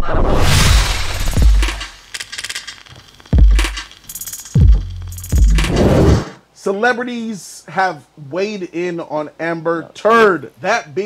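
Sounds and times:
rapid metallic clicking: 1.3s - 5.9s.

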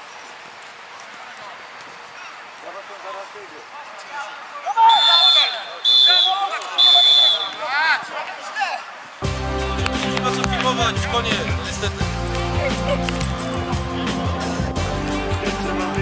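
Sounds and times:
men's voices calling: 1.0s - 16.0s
referee's whistle blasts: 4.8s - 7.8s
music: 9.2s - 16.0s.

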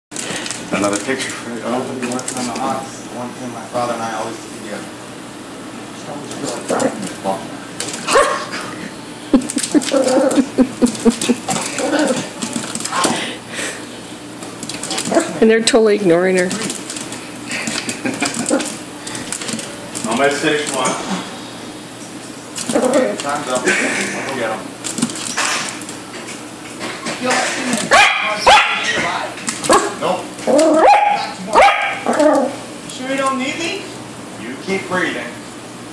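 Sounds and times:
puppy crying: 9.3s - 12.4s, 29.7s - 32.6s
puppy whining yips: 29.7s - 32.6s.

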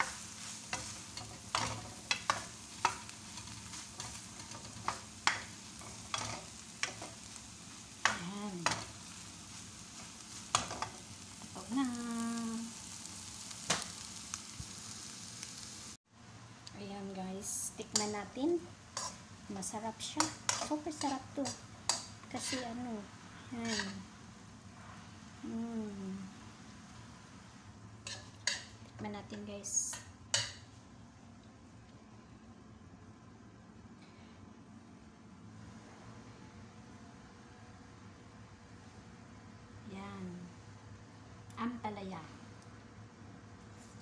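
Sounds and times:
food sizzling in a frying pan: 0.0s - 16.0s, 16.7s - 30.8s
low room hum: 0.0s - 44.0s.

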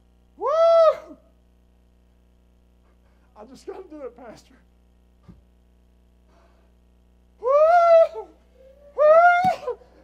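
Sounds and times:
man shouting woo: 0.4s - 1.3s, 7.4s - 9.9s.

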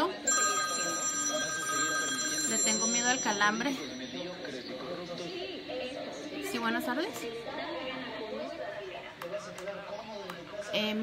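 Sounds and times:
telephone ringing: 0.0s - 5.8s.

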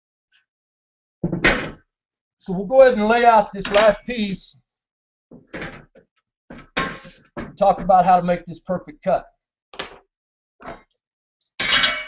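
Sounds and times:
metal handling scrape: 6.8s - 7.2s.

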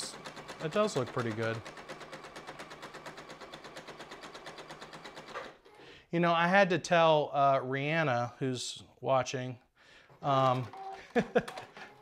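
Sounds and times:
sewing machine stitching: 0.0s - 5.8s.

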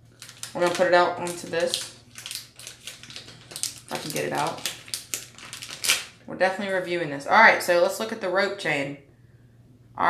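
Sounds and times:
packet crinkling and rustling: 0.0s - 6.3s.

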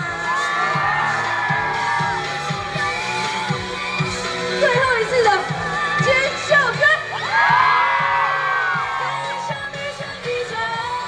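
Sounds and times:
woman singing into microphone: 9.0s - 11.0s.

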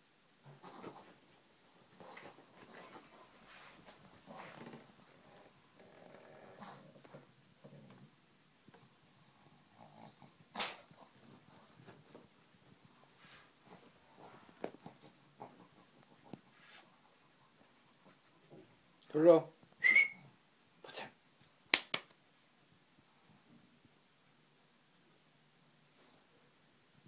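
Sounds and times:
small dog growling: 5.2s - 8.1s, 9.6s - 11.2s
finger snaps: 21.7s - 22.2s.

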